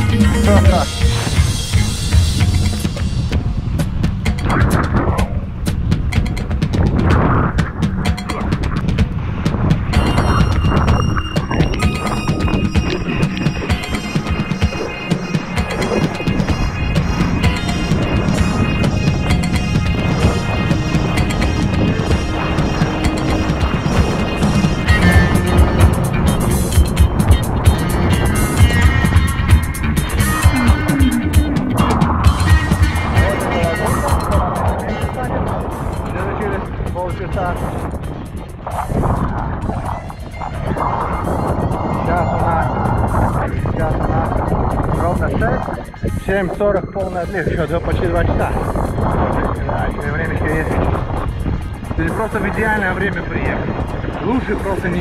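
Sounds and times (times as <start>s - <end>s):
music playing: 0.0s - 55.0s
wind buffeting microphone: 0.0s - 55.0s.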